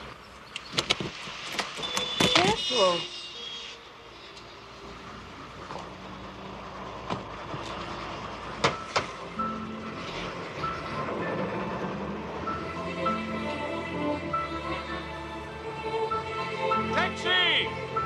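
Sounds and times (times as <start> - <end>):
soft musical tones: 8.8 - 18.0.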